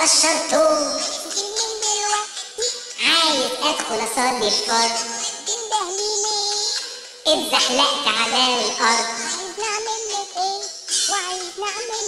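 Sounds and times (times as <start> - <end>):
music with pitch-shifted singing: 0.0 - 12.0.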